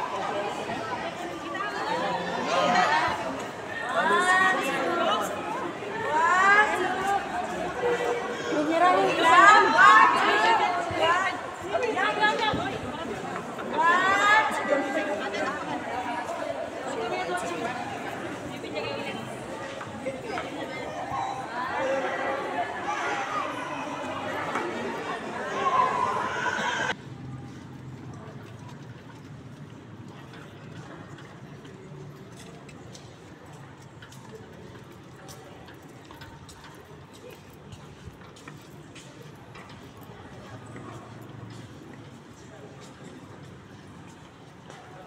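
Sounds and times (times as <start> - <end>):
people talking: 0.0 - 27.0
indistinct chatter: 0.0 - 45.0.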